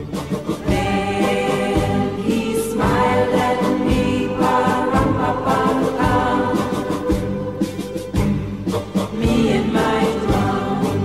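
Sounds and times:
choir singing sustained notes: 0:00.0 - 0:11.0
steady beat: 0:00.0 - 0:11.0.

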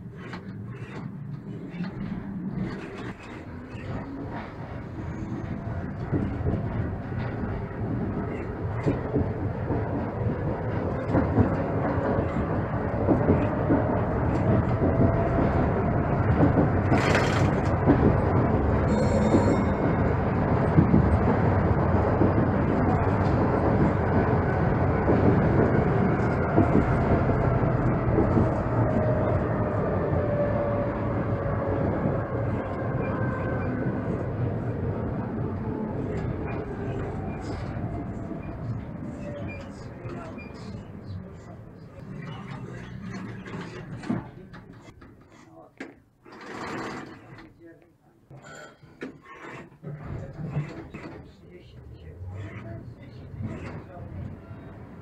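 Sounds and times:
tram wheels rumbling on rails: 0:00.0 - 0:47.6, 0:48.5 - 0:55.0
tram motor whine: 0:00.1 - 0:41.9.

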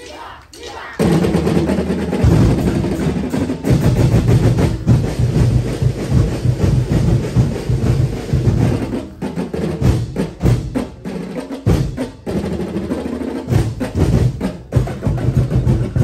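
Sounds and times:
drum ensemble playing fast rhythm: 0:00.5 - 0:16.0.

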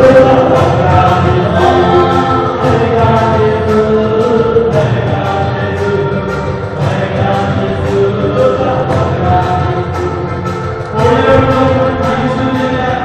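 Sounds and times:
amplified music with steady beat: 0:00.0 - 0:13.0
group of voices singing: 0:00.0 - 0:13.0.

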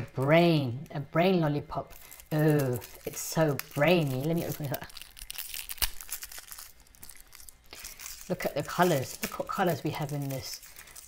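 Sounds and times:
plastic wrapper crinkling: 0:00.1 - 0:11.0.

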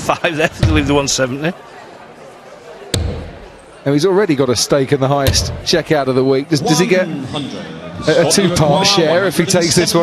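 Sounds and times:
dart striking dartboard: 0:03.0 - 0:03.5, 0:05.3 - 0:05.6.

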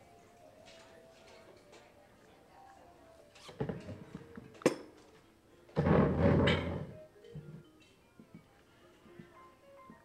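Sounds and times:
chair scraping: 0:05.7 - 0:07.6.

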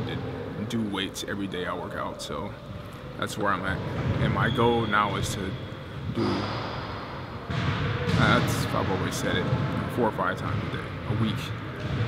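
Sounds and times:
steady background noise: 0:00.0 - 0:12.0.

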